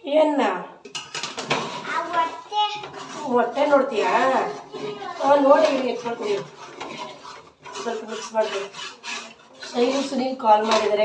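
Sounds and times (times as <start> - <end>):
spoon scraping metal pot: 0.8 - 11.0.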